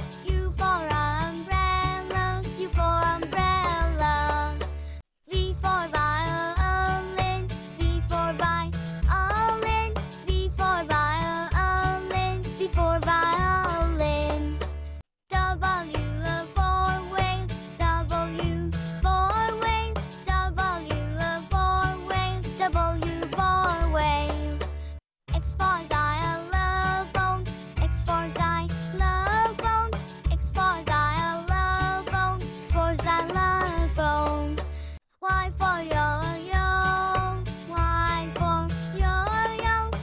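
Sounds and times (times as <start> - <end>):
child singing: 0.0 - 4.6, 5.3 - 14.6, 15.3 - 24.6, 25.3 - 34.6, 35.2 - 40.0
childlike voice singing: 28.0 - 34.6, 35.2 - 40.0.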